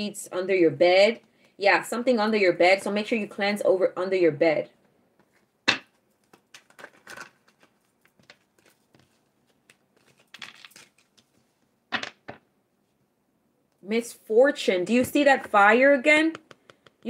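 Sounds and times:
cards rustling and slapping on table: 0:05.2 - 0:12.4.

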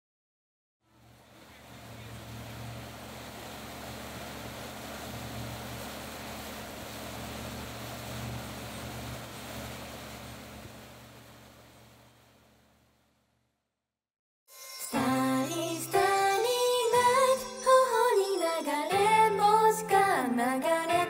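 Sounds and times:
wash of water noise: 0:00.9 - 0:13.1
boat engine humming: 0:00.9 - 0:13.2.

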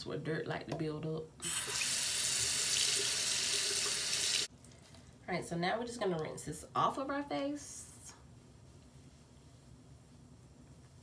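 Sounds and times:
water running from sink tap: 0:01.4 - 0:04.5.

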